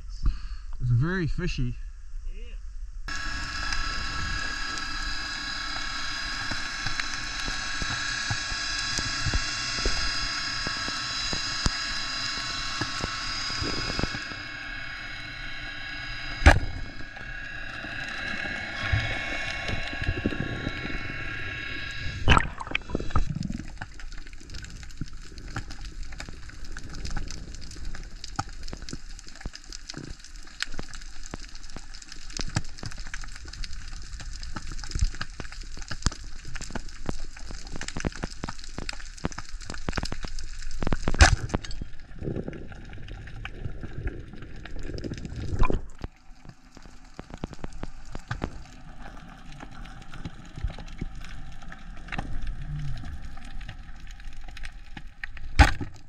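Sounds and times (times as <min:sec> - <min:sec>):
high-pitched whine: 0:01.8 - 0:23.6
underwater water noise: 0:02.8 - 0:56.0
clicks and crackling underwater: 0:03.1 - 0:56.0.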